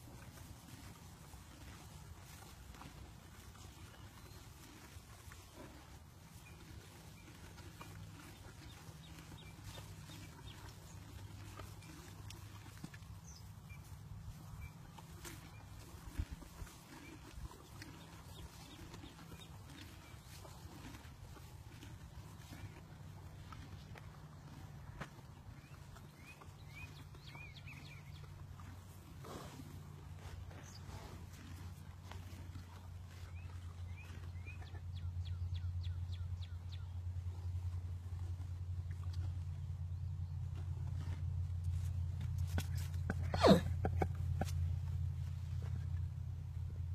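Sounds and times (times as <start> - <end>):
faint low hum: 0.0 - 46.9
horses breathing and nuzzling: 0.0 - 46.9
small birds chirping: 0.2 - 37.8.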